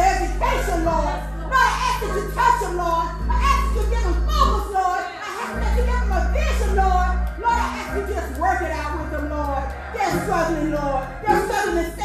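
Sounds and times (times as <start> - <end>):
music: 0.0 - 12.0.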